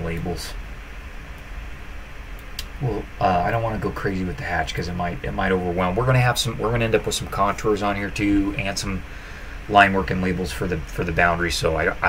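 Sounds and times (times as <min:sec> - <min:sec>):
low background hum: 0:00.0 - 0:12.0
faint clicks: 0:02.3 - 0:02.8.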